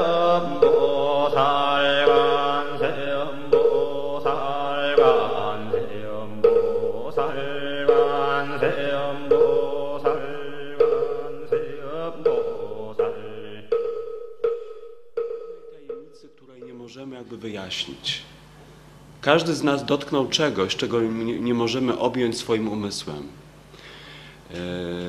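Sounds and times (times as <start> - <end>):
voices chanting a mantra: 0.0 - 13.8, 24.5 - 25.0
sharp pitched knock: 0.0 - 16.9.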